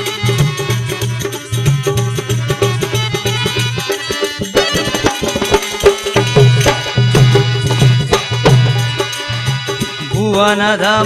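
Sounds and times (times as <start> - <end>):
dholak drum strokes: 0.0 - 11.0
hand cymbals: 0.0 - 11.0.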